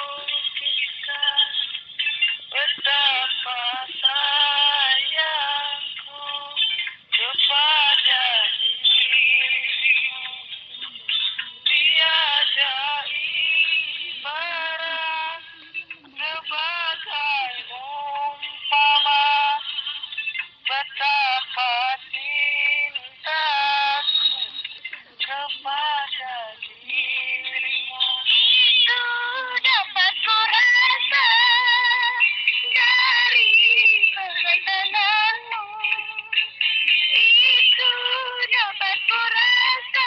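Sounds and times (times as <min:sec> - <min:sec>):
high-pitched singing voice: 0:00.0 - 0:40.0.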